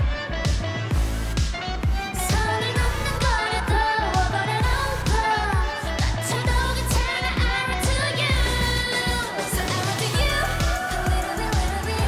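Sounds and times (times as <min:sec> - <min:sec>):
dance-pop backing track: 0:00.0 - 0:12.0
women singing: 0:02.2 - 0:12.0.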